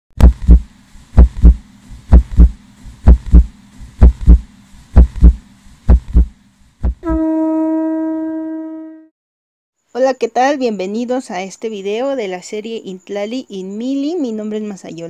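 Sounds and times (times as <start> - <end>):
deep drum beating: 0.2 - 7.1
conch shell trumpet note: 7.0 - 9.1.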